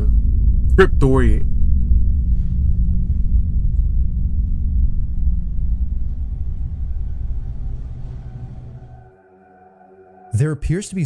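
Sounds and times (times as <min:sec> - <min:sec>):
deep steady rumble: 0:00.0 - 0:09.1.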